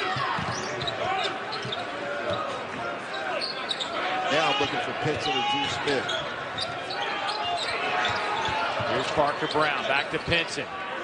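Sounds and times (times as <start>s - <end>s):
sneakers squeaking on floor: 0.1s - 10.3s.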